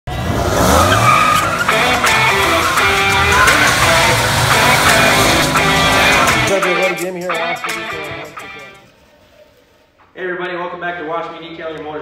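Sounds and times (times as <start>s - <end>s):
tires squealing on asphalt: 0.1s - 6.5s
truck engine revving: 0.1s - 8.6s
music: 0.2s - 9.0s.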